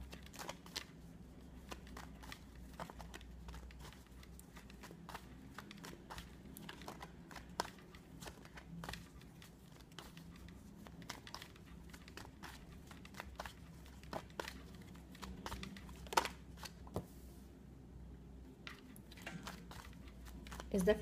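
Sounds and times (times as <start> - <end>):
cards being shuffled: 0.0 - 17.2, 18.6 - 21.0.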